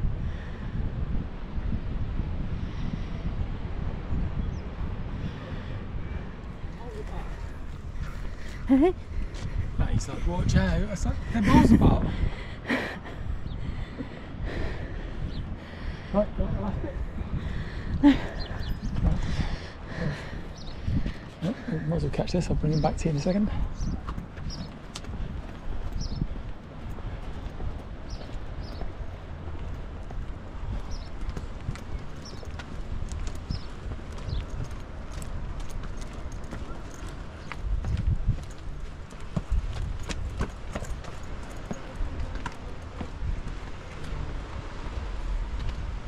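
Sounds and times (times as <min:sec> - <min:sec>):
wind rumble on microphone: 0:00.0 - 0:46.0
footsteps on paved path: 0:06.4 - 0:13.1, 0:13.8 - 0:46.0.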